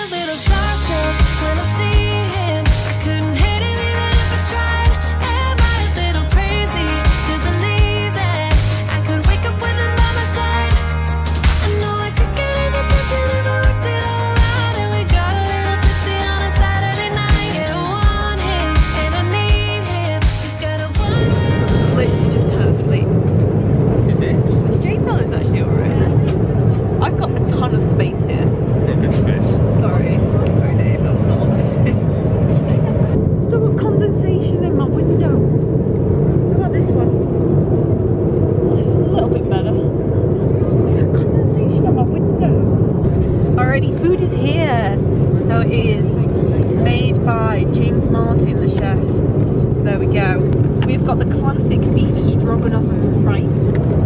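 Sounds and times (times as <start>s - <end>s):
airliner cabin engine drone: 0.0s - 54.0s.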